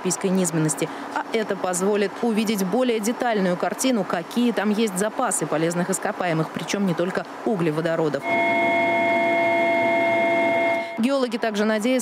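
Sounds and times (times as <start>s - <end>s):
machinery whining: 8.2s - 11.1s
rushing noise: 8.2s - 11.1s.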